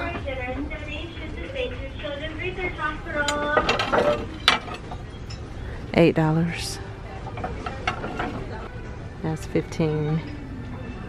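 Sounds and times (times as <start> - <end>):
plates clinking and scraping: 3.4 - 5.5, 7.1 - 8.9.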